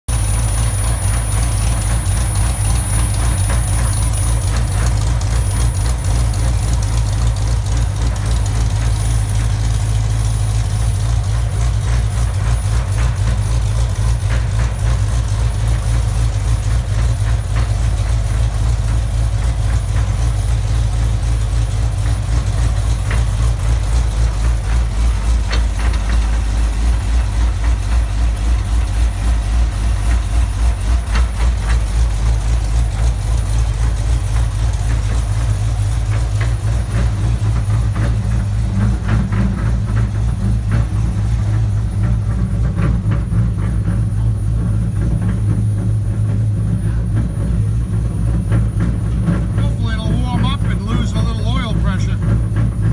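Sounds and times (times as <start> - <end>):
car engine idling: 0.1 - 52.9.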